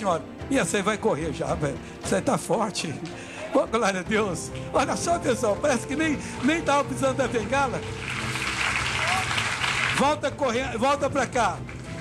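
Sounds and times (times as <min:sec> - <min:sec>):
congregation applauding: 0:03.0 - 0:12.0.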